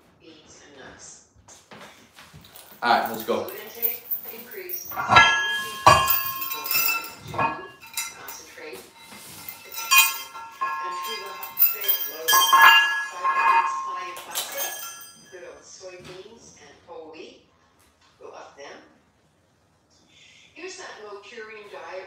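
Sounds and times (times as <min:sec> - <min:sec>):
metal weight plates clanking: 0:02.5 - 0:15.3.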